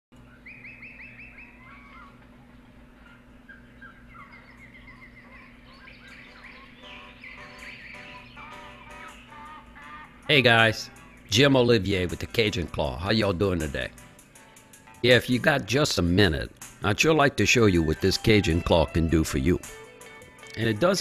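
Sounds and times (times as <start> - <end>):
birds chirping and trilling: 0.2 - 16.7
steady low hum: 0.2 - 17.5.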